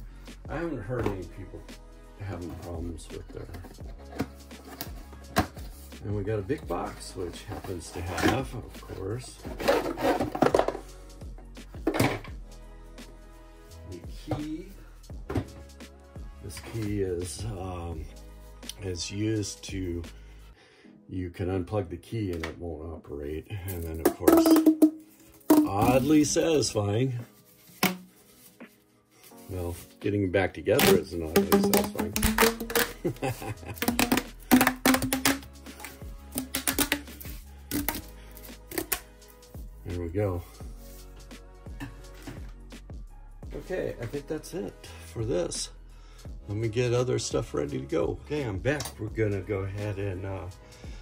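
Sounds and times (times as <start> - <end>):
quiet background music: 0.0 - 51.0
plastic hose clicking and creaking: 30.8 - 39.1.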